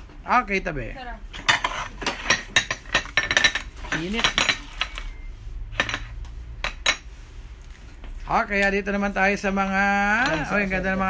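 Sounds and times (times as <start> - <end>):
porcelain dishes clinking: 1.3 - 7.1, 10.2 - 10.6.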